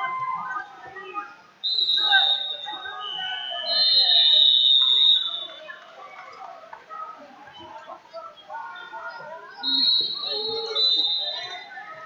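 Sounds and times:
lower-pitched whistle: 0:01.6 - 0:05.6, 0:09.6 - 0:11.7
shrill whistle blast: 0:01.6 - 0:05.6, 0:09.6 - 0:11.7.

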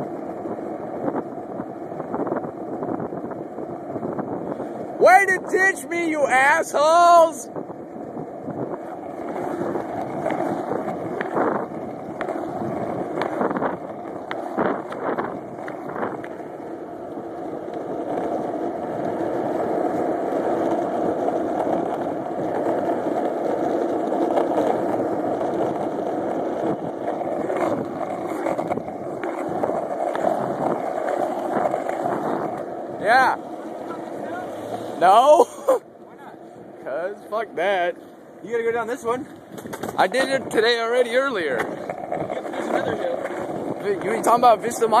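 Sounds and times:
skateboard wheels rolling on asphalt: 0:00.0 - 0:45.0.

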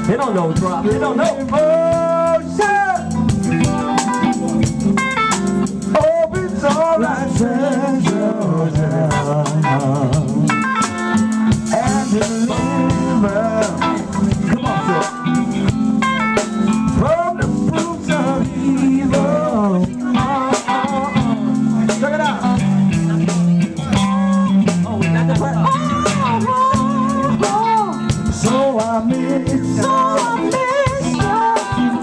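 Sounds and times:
drum hits: 0:00.0 - 0:32.0
live band playing: 0:00.0 - 0:32.0.

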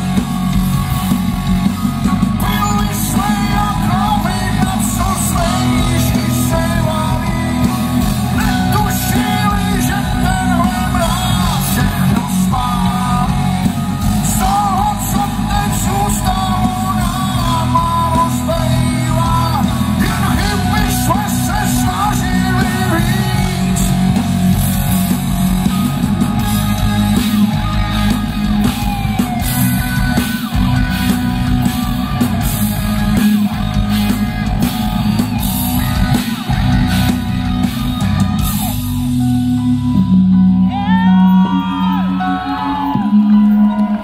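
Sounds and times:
crowd whooping: 0:00.0 - 0:44.0
hard rock band playing: 0:00.0 - 0:44.0.

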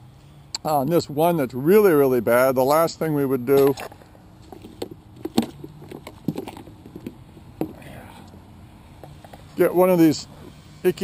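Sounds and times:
objects clicking and knocking: 0:03.5 - 0:07.8.

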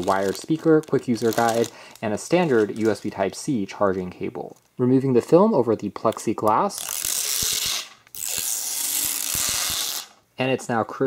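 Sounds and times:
plastic film peeling off: 0:00.0 - 0:03.4, 0:06.0 - 0:10.2.

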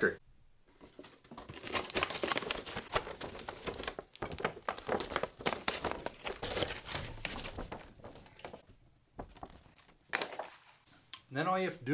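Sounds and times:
plastic packaging crinkling: 0:01.0 - 0:08.6.

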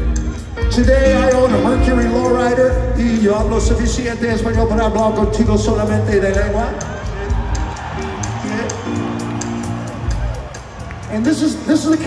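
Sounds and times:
bass guitar: 0:00.0 - 0:12.0.

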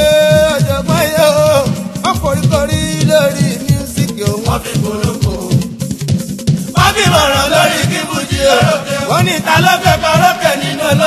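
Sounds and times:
quick hand-drum strokes: 0:00.0 - 0:11.0.

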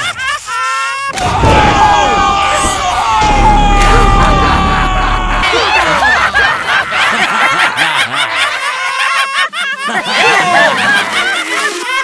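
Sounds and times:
cartoonish high-pitched giggling: 0:05.4 - 0:12.0.

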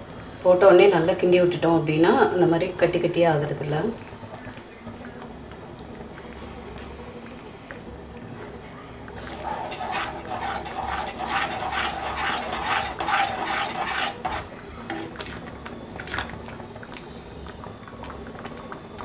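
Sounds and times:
spoon scraping an iron pan: 0:09.2 - 0:15.0.

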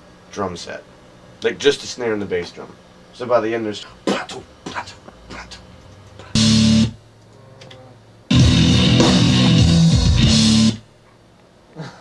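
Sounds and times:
electric bass guitar riff: 0:06.3 - 0:07.0, 0:07.8 - 0:10.8.

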